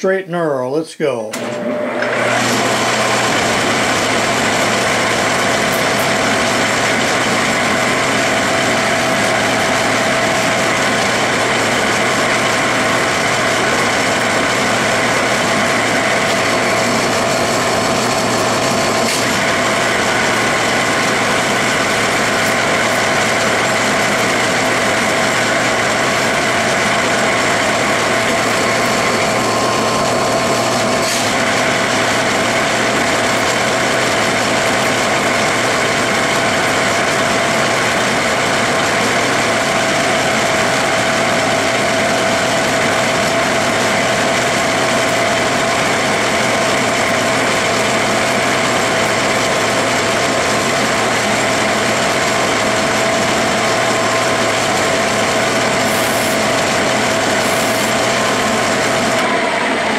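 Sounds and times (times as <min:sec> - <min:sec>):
metal lathe whine: 0:01.4 - 0:59.9.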